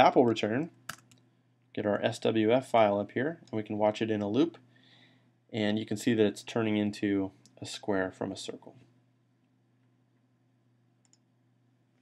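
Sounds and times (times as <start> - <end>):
low steady hum: 0.0 - 12.0
computer mouse clicks: 0.9 - 1.2, 11.0 - 11.3.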